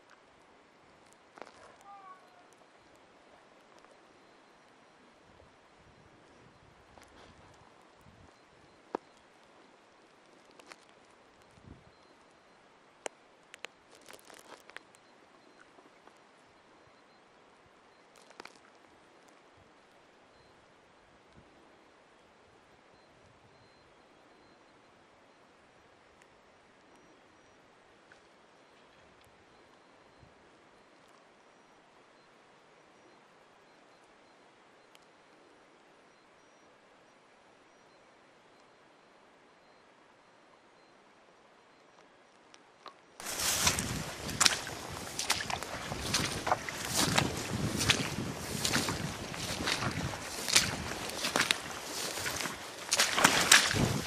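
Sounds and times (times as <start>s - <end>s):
faint outdoor hiss: 0.0s - 54.0s
dry grass swishing and crackling: 43.2s - 54.0s.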